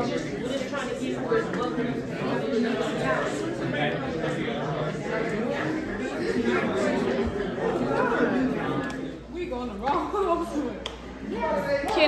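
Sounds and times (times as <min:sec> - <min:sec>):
people chatting: 0:00.0 - 0:12.0.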